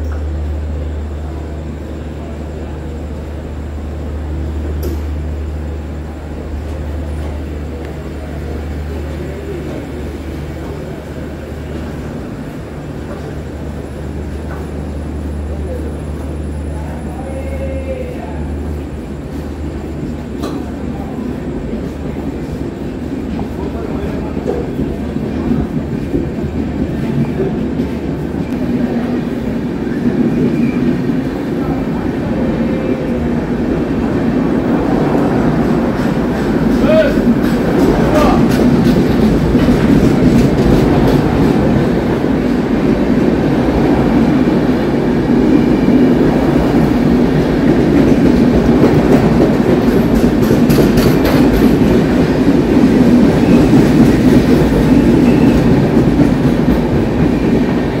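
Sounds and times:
train wheels clickety-clack on rails: 0.0 - 58.0.

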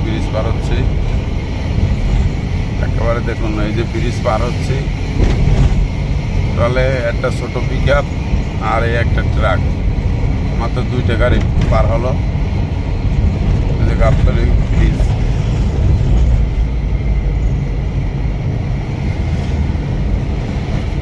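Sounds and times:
engine and road rumble: 0.0 - 21.0.

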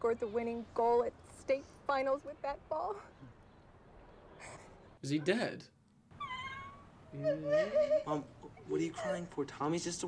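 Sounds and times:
woman crying: 6.1 - 9.4.

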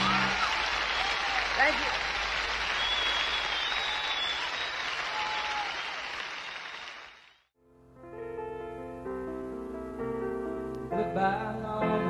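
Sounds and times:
audience applauding: 0.0 - 7.5.

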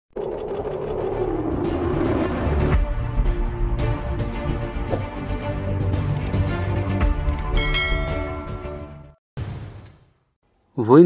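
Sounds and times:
news intro theme music: 0.5 - 9.2.

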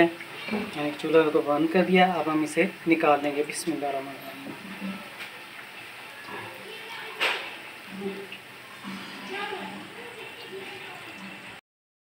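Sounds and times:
hot oil sizzling: 0.0 - 11.6
faint voices: 4.1 - 11.6.

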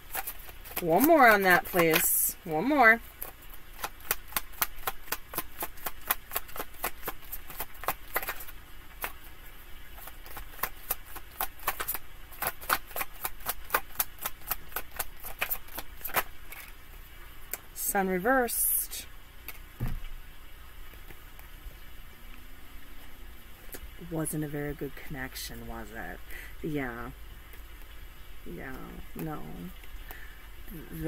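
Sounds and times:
cards being shuffled: 0.0 - 16.8.

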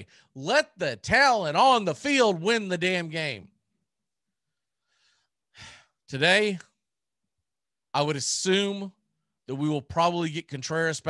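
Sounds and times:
faint breath: 4.6 - 6.0.

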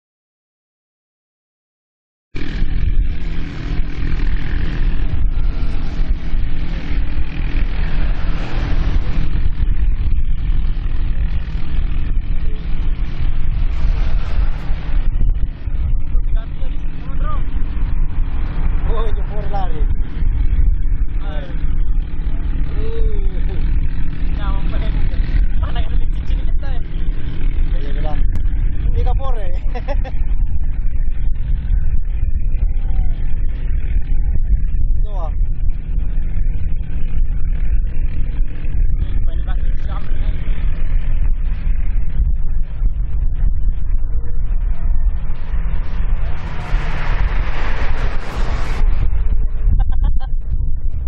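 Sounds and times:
boat engines droning: 2.4 - 50.2.

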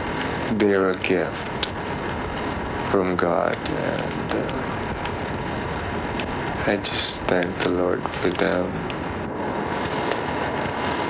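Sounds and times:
cassette tape hiss: 0.0 - 11.0
faint steady tone: 0.0 - 11.0.

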